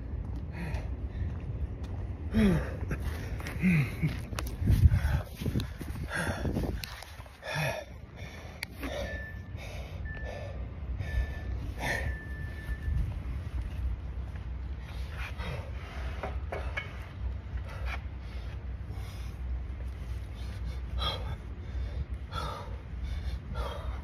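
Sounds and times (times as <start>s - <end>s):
man breathing hard and gasping: 2.2s - 12.3s, 20.2s - 24.0s.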